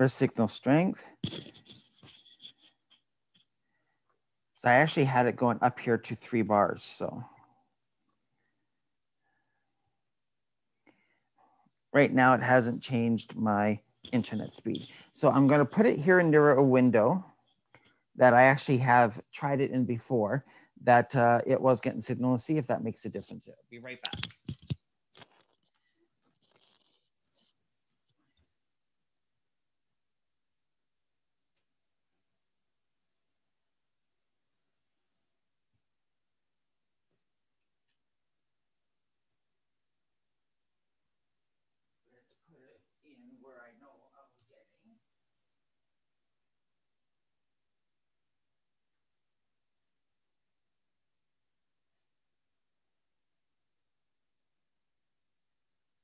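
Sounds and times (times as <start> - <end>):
faint clicks and rustles: 24.1 - 28.6.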